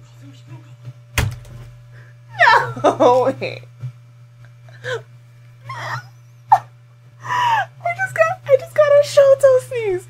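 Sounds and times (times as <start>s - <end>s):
woman's stifled laughter: 4.7s - 6.7s.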